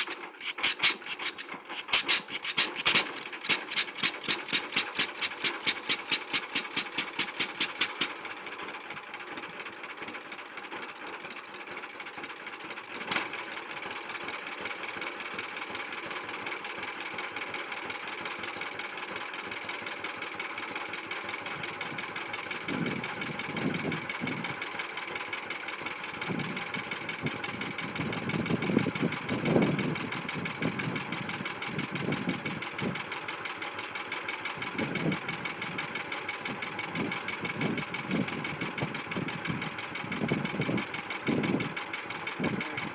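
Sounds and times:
sharp engine pop: 0.0s - 8.1s
tractor engine idling: 0.0s - 11.1s, 20.9s - 42.9s.

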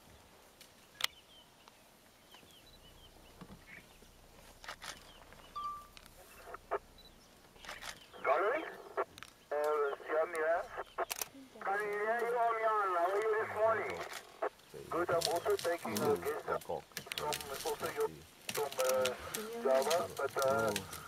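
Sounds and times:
man's voice over two-way radio: 8.2s - 21.0s
twigs and branches snapping: 15.0s - 21.0s.

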